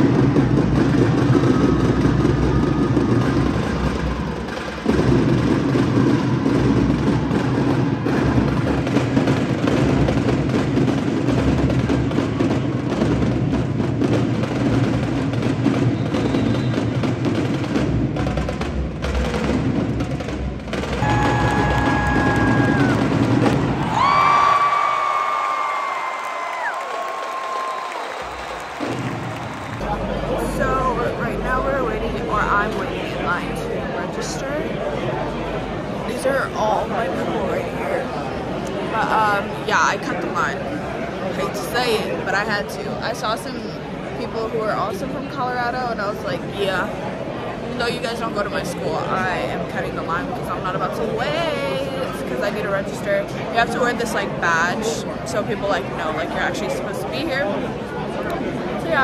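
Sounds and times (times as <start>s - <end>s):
heavy drumming: 0.0s - 34.6s.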